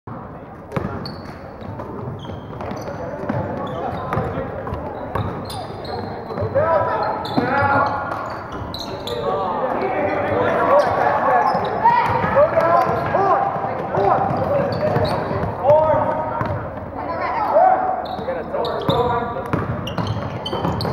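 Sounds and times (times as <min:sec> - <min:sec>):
sneakers squeaking on court: 0:00.6 - 0:20.9.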